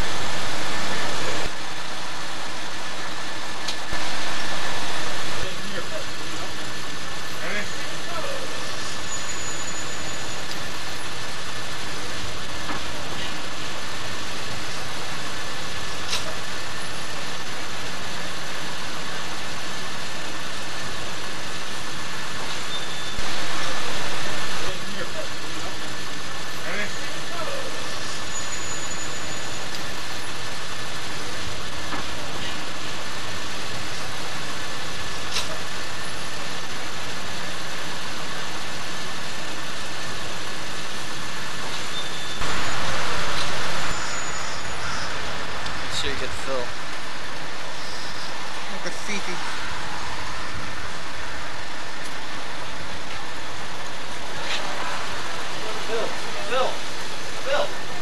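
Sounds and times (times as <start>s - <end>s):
thin steady whine: 0.0s - 58.0s.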